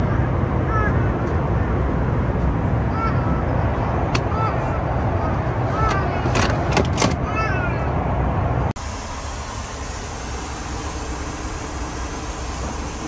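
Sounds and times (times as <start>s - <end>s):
airliner cabin rumble: 0.0s - 13.0s
cabin air hiss: 8.8s - 13.0s.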